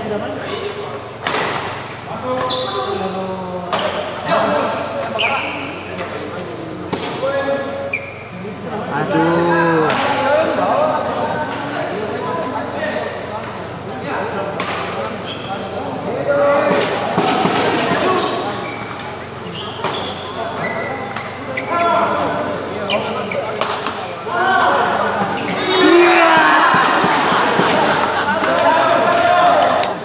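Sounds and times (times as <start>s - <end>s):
voices of players and spectators: 0.0s - 30.0s
rackets striking shuttlecock: 14.5s - 15.2s, 23.4s - 24.8s.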